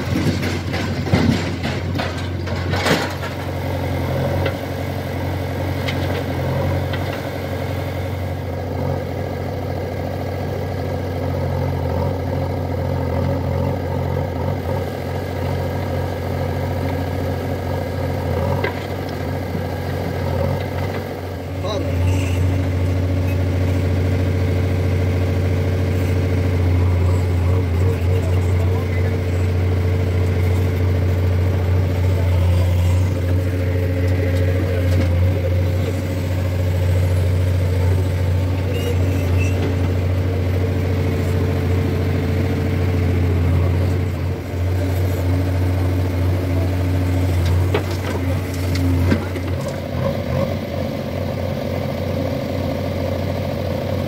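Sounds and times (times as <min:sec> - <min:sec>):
diesel engines idling: 0:00.0 - 0:54.0
diesel engine drone from inside cab: 0:03.3 - 0:54.0.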